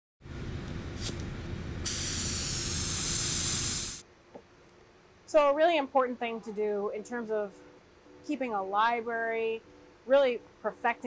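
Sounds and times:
faint steady hum: 0.2 - 11.0
spray-like hiss: 1.0 - 1.2, 1.8 - 4.0.

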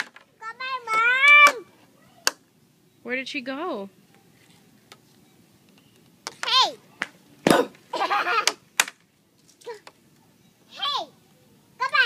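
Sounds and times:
toddler shouting: 0.4 - 2.4, 6.4 - 6.8, 10.7 - 11.2, 11.8 - 12.0.

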